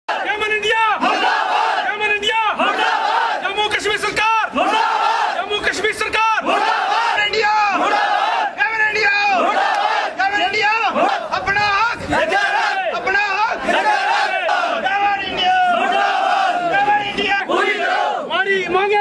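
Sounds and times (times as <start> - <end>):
crowd of men chanting slogans: 0.1 - 19.0.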